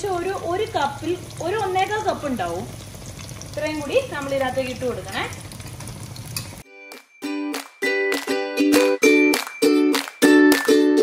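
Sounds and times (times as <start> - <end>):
oil sizzling in a frying pan: 0.0 - 6.7.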